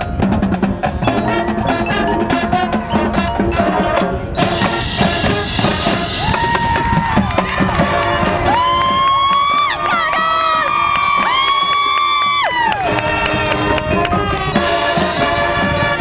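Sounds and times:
marching band brass chords: 0.0 - 16.0
crowd cheering: 4.5 - 15.5.

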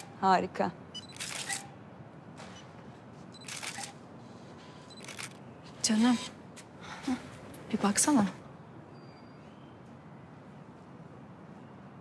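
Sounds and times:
camera shutter click and whir: 1.0 - 1.7, 3.4 - 4.0, 4.8 - 5.4.

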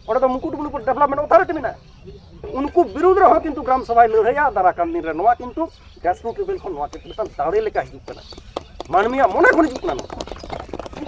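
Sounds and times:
man speaking: 0.0 - 1.8, 2.4 - 8.2.

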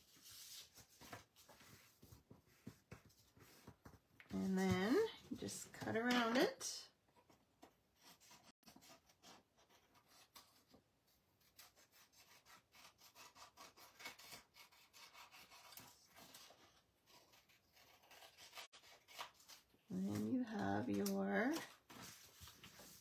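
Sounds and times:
paper rustling: 0.0 - 5.0, 18.1 - 23.0
scissors snipping paper: 11.4 - 19.7.

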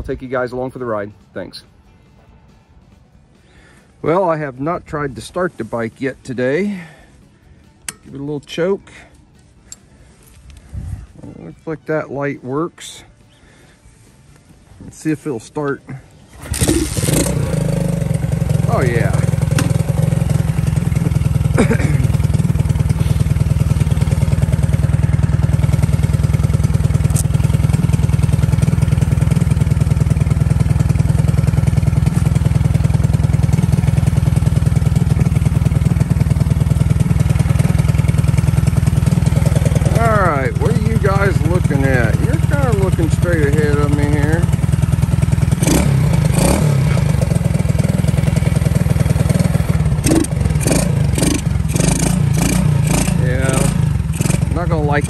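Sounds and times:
motorbike engine idling: 15.4 - 55.0.

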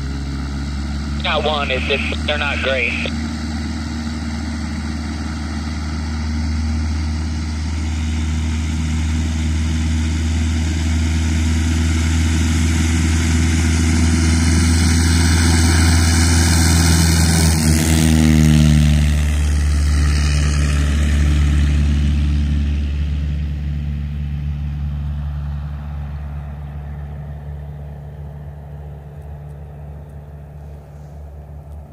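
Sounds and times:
propeller plane engine drone: 0.0 - 31.9.

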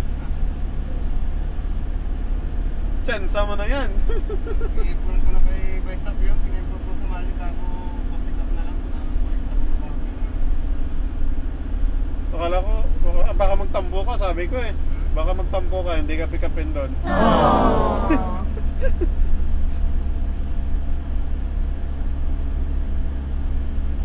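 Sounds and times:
minibus engine and road noise: 0.0 - 24.0
voices: 17.0 - 18.6.

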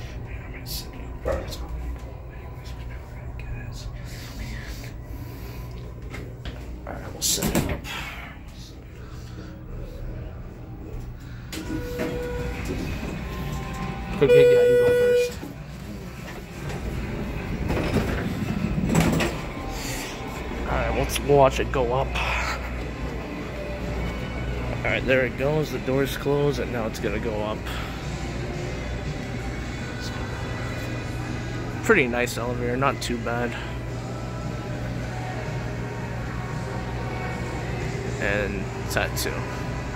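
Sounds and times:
elevator rumble and hum: 0.0 - 39.9
hydraulic elevator hum: 9.7 - 20.7
brief steady tones: 14.2 - 15.4.

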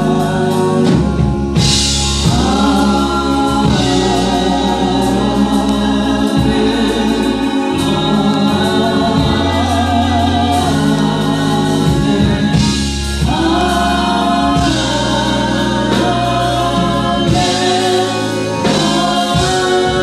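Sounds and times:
gospel group singing in harmony: 0.0 - 20.0
steady low notes: 0.0 - 20.0.

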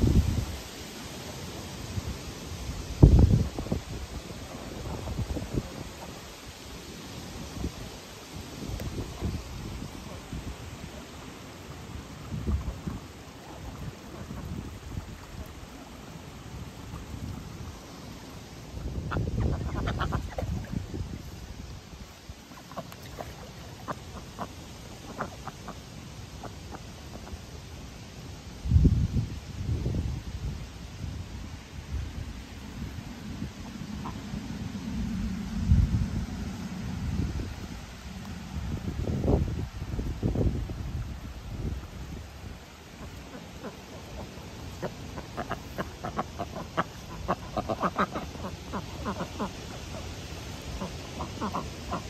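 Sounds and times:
wind rumbling on microphone: 0.0 - 24.5, 28.5 - 52.0
leaves and weeds rustling: 0.0 - 52.0
duck quacks: 19.0 - 20.5, 25.1 - 25.8, 43.0 - 50.1, 50.7 - 52.0.

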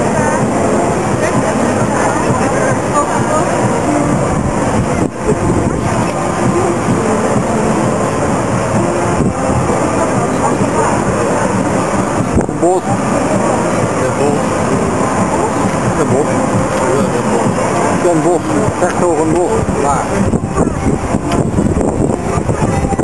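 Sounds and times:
indistinct voices: 0.0 - 23.0
loud rushing noise: 0.0 - 23.0.

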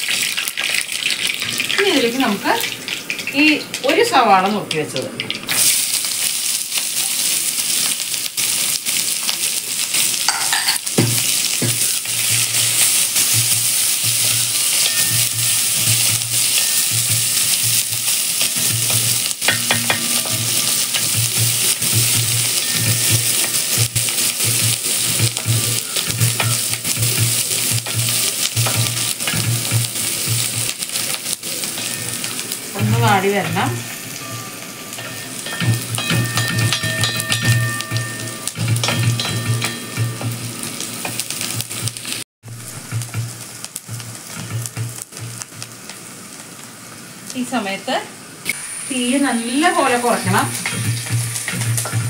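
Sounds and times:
onion sizzling in hot oil: 0.0 - 52.0.

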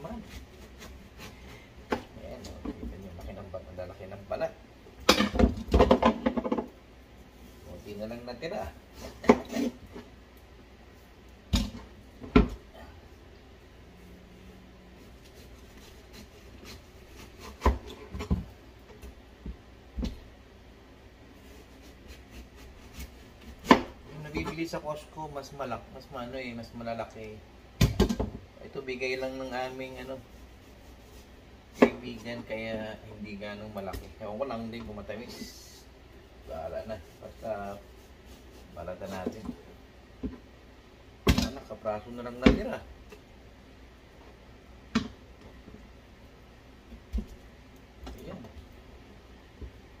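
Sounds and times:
knife cutting watermelon rind: 15.0 - 18.4, 21.4 - 24.8, 36.4 - 39.5.

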